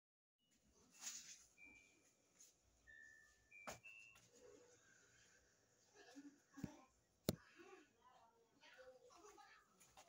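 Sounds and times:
faint high whistle-like tones: 0:00.5 - 0:05.3.

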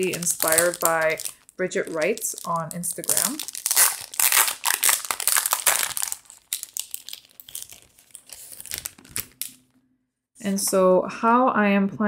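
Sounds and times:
plastic bag crinkling: 0:00.0 - 0:09.7
plastic crackles and clicks: 0:00.0 - 0:09.7.

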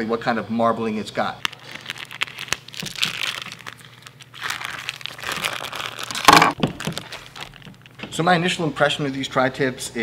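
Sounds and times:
plastic packaging crinkling: 0:01.4 - 0:08.0.

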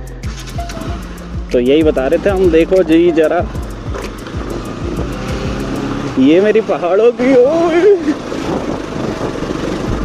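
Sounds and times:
motorcycle engine under load: 0:01.5 - 0:10.0.

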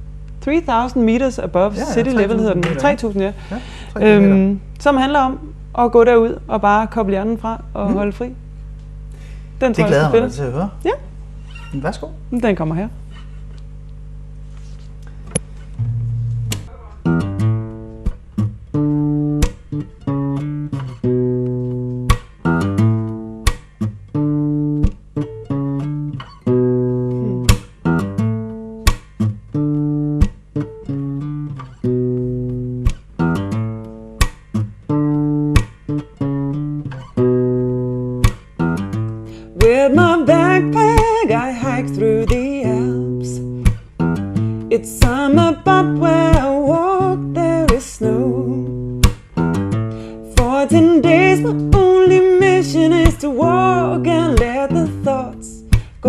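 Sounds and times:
fingerstyle acoustic guitar: 0:01.7 - 0:03.2, 0:14.5 - 0:56.0
person singing: 0:01.8 - 0:02.9.

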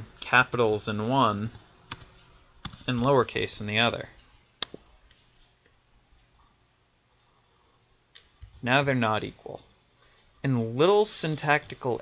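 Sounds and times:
computer mouse clicks: 0:07.2 - 0:08.6.

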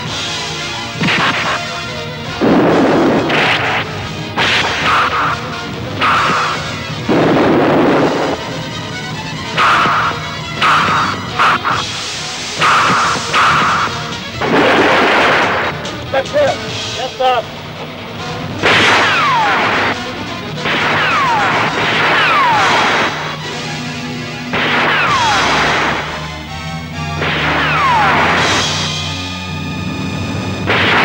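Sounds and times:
dramatic film score: 0:00.0 - 0:31.0
fight hits and crashes: 0:01.0 - 0:01.7, 0:02.4 - 0:08.6, 0:09.5 - 0:12.0, 0:12.6 - 0:16.2, 0:18.6 - 0:23.6, 0:24.5 - 0:26.3, 0:27.1 - 0:29.1, 0:30.7 - 0:31.0
falling swoops: 0:02.4 - 0:08.7, 0:18.6 - 0:23.7, 0:27.2 - 0:29.2.

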